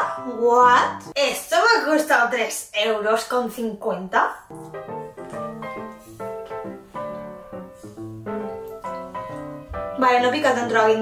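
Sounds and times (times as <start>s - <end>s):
background piano music: 0.0s - 1.3s, 4.5s - 11.0s.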